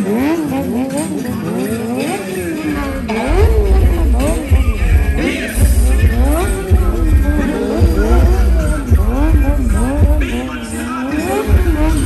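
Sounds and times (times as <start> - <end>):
motorcycle engines revving: 0.0 - 12.0.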